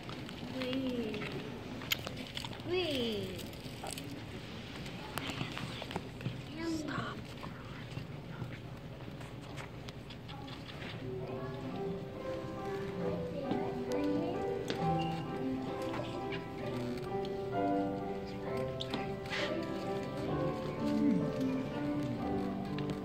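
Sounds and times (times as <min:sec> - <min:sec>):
audience murmur and rustling: 0:00.0 - 0:23.0.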